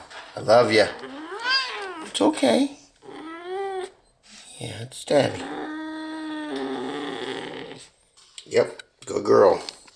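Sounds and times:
cat growling: 0.7s - 2.2s, 3.0s - 4.0s, 5.1s - 7.9s.

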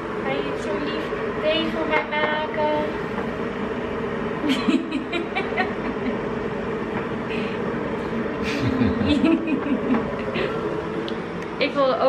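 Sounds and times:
low room hum: 0.0s - 12.0s
soft chuckling: 4.4s - 6.2s, 8.4s - 10.6s.

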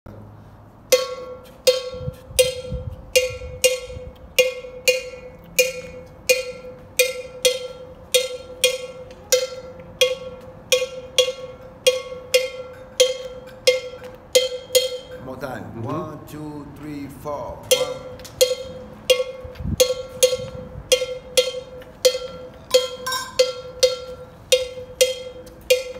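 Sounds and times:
metal bell struck with stick: 0.9s - 15.3s, 17.6s - 25.9s.

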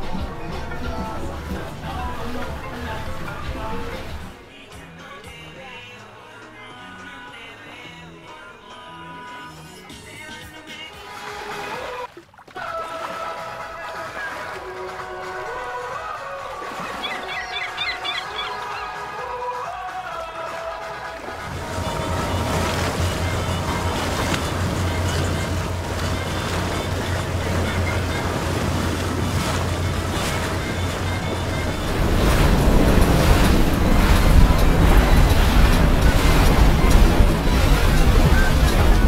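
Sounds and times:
background music: 0.0s - 39.0s
water: 0.0s - 39.0s
wind noise: 21.4s - 39.0s.

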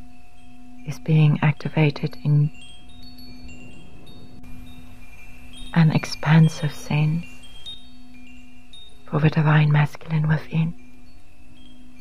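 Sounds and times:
wind chimes ringing: 0.0s - 12.0s.

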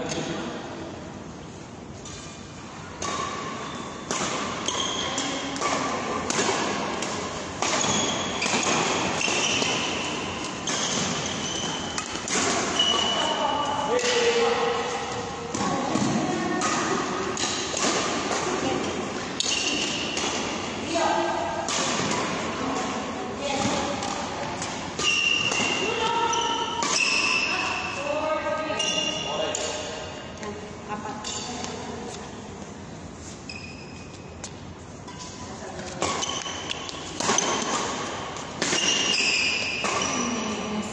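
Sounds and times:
racket striking shuttlecock: 3.0s - 20.7s, 21.6s - 22.6s, 23.5s - 27.8s, 35.9s - 40.4s
shoes squeaking on court: 4.6s - 5.6s, 7.7s - 13.7s, 33.2s - 35.4s.

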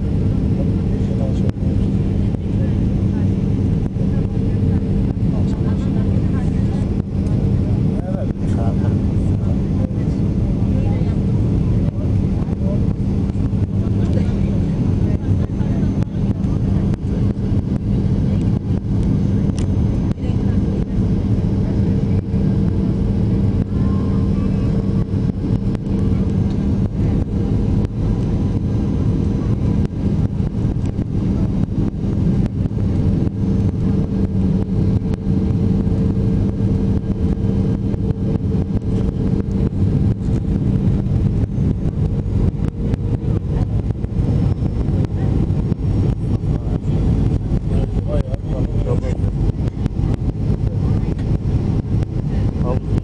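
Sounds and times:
airliner engine and airflow rumble: 0.0s - 53.0s
constant low hum: 0.0s - 53.0s.

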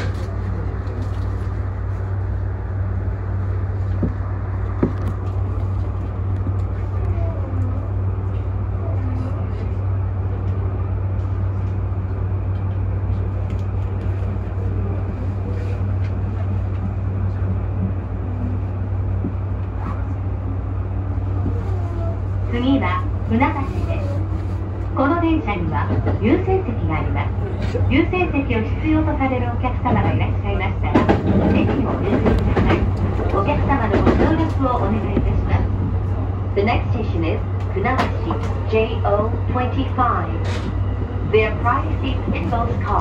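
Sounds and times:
electric train rumble: 0.0s - 43.0s
faint voices: 5.4s - 11.2s, 19.8s - 43.0s.

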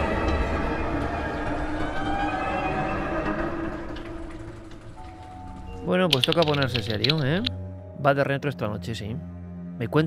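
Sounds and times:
dark droning sound bed: 0.0s - 7.4s.

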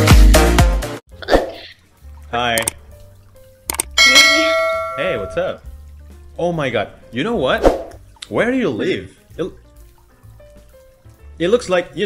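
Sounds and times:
click: 3.7s - 3.9s
bright bell ding: 4.0s - 5.6s.

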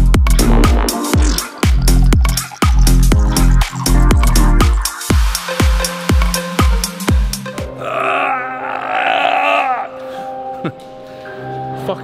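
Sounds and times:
man's wavering vocal cry: 7.7s - 10.1s.

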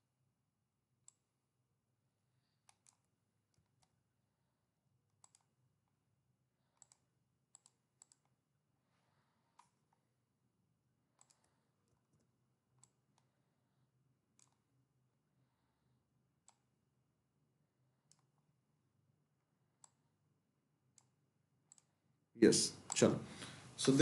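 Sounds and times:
computer mouse clicks: 1.0s - 1.2s, 2.6s - 4.0s, 5.1s - 6.0s, 6.7s - 8.4s, 9.5s - 10.1s, 11.1s - 13.3s, 14.3s - 14.7s, 16.4s - 16.7s, 18.0s - 18.5s, 19.8s - 20.1s, 20.9s - 22.0s, 22.8s - 23.1s
person speaking: 22.4s - 24.0s.

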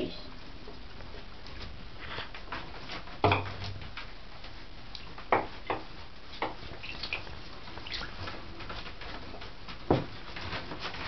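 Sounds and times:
paws splashing in bathwater: 6.3s - 11.0s.

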